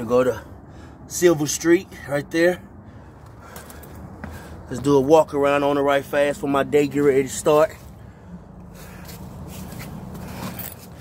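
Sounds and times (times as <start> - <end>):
footsteps: 3.5 - 4.5.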